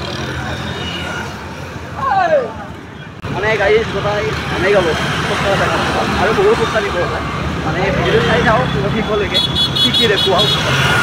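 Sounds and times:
motorbikes and scooters passing: 0.0 - 2.0, 2.6 - 11.0.

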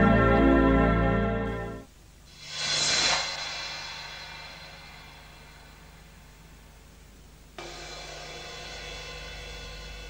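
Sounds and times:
steady low hum: 0.6 - 10.0
noisy whoosh: 2.3 - 7.0.

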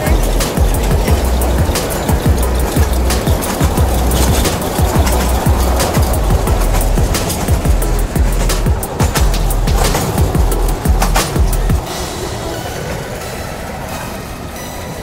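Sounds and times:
music: 0.0 - 15.0
toy train clattering on rails: 0.0 - 15.0.

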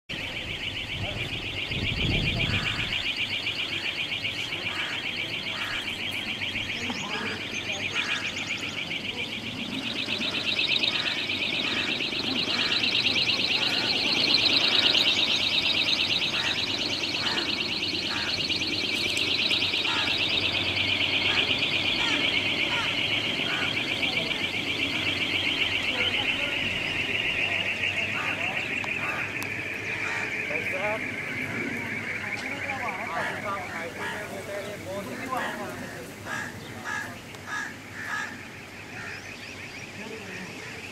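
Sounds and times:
wind turbine whining: 0.1 - 39.1.

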